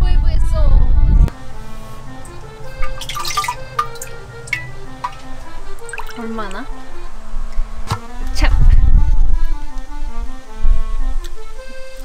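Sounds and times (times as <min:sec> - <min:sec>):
soft background music: 0:00.0 - 0:12.0
ladle dipping into liquid: 0:02.2 - 0:06.2
small drips and splashes: 0:02.8 - 0:06.6.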